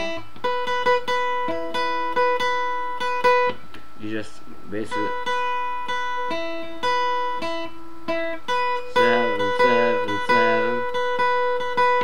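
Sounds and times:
acoustic guitar melody: 0.0 - 12.0.

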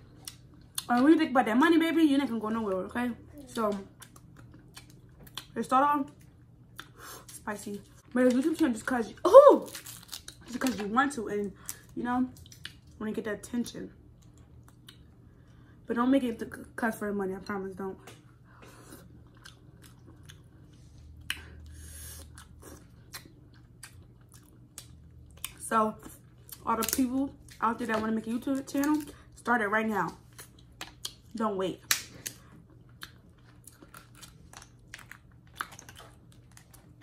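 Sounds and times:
faint chewing and mouth sounds: 0.0 - 1.1, 3.3 - 8.9, 11.6 - 13.0, 14.1 - 15.8, 18.0 - 29.4, 30.0 - 37.0
chewing: 18.8 - 27.6, 32.2 - 37.0.

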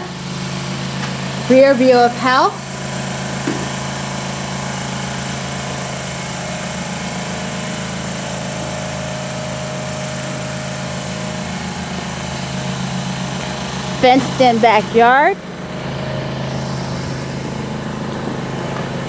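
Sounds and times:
small gasoline engine running: 0.0 - 19.0.

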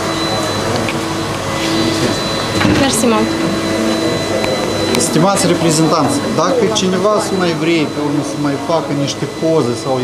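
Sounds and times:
faint high whine: 0.0 - 10.0
machine humming: 0.0 - 10.0.

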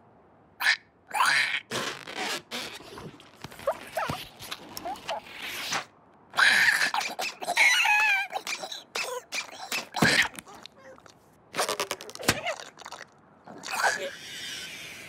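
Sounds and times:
cartoon ostrich shriek: 0.6 - 2.6, 6.4 - 10.6
cartoon ostrich squeaky cries: 6.4 - 11.0.

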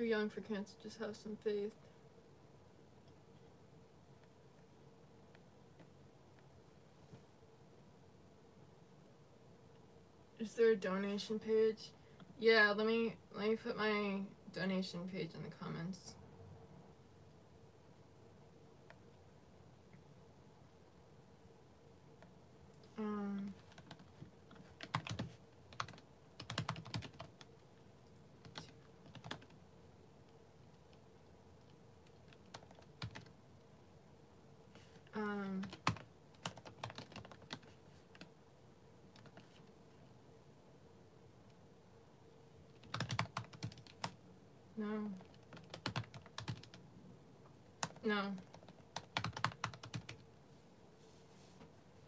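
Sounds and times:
computer keyboard typing: 23.6 - 27.5, 28.4 - 29.6, 31.6 - 33.3, 35.5 - 38.3, 39.1 - 39.6, 42.7 - 44.2, 45.2 - 46.8, 47.8 - 50.2.

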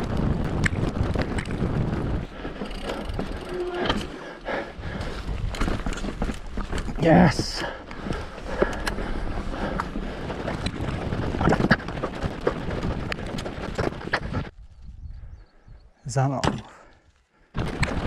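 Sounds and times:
wind on microphone: 0.0 - 4.0, 8.0 - 16.0
mountain bike rattling over stones: 0.0 - 15.0, 17.5 - 18.0.

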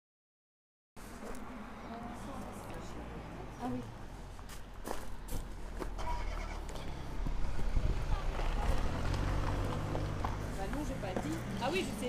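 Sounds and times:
car engine rumbling: 3.4 - 12.0.

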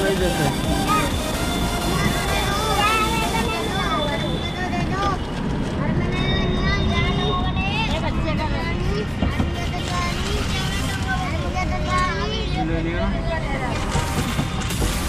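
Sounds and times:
children chattering and calling out: 0.0 - 14.6
traffic rumble: 0.0 - 15.0.

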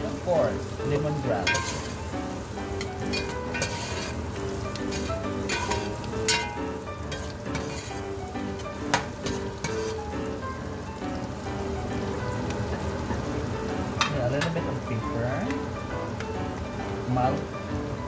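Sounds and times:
vegetables sizzling in hot oil: 0.0 - 18.0
spoon clinking against pot: 1.4 - 2.0, 2.8 - 4.1, 4.8 - 8.0
metal spoon stirring: 1.4 - 10.0.

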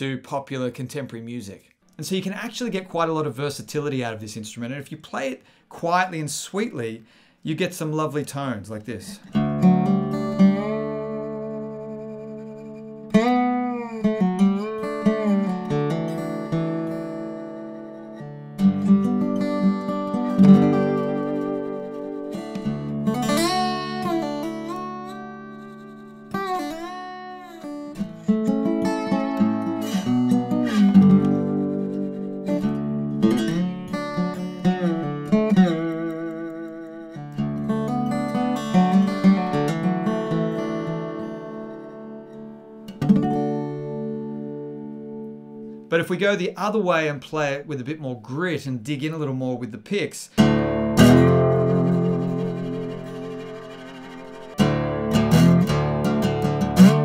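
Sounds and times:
lap slide guitar playing: 9.3 - 45.8, 50.4 - 57.0.

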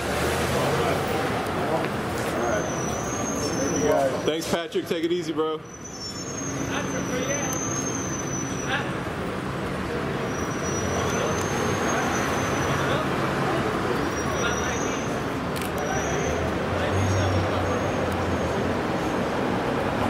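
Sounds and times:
vehicle engines: 0.0 - 20.0.

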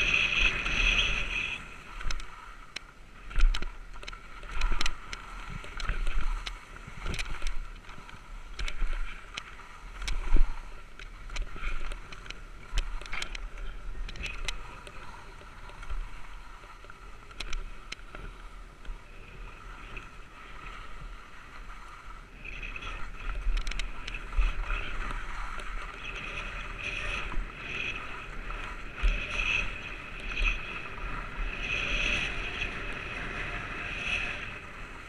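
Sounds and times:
skis scraping over snow: 0.0 - 35.0.

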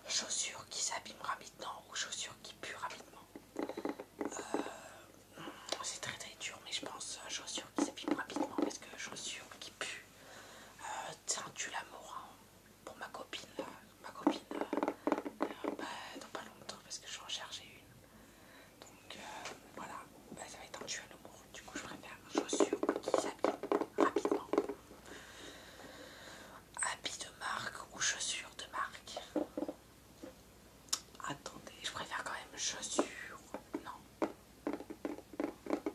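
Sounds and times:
man whispering: 0.0 - 3.3, 5.7 - 10.0, 18.8 - 23.4, 26.8 - 29.3, 31.2 - 34.0.

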